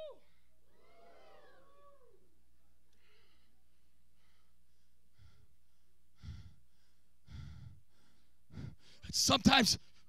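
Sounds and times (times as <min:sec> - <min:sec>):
man breathing into microphone: 0:04.2 - 0:09.1.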